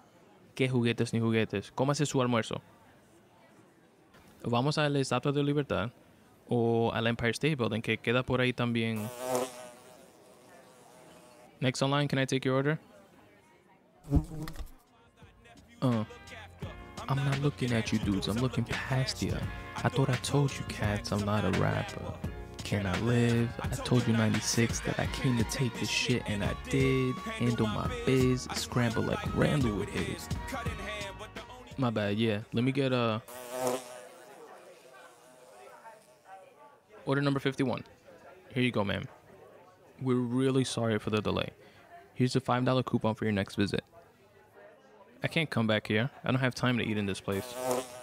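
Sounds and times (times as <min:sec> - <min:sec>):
housefly buzzing: 0:09.0 - 0:11.6, 0:14.1 - 0:14.8, 0:33.3 - 0:36.3, 0:47.4 - 0:48.0.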